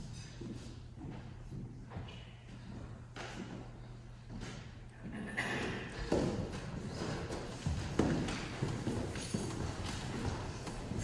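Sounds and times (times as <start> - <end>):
footsteps on wooden floor: 6.0 - 11.0.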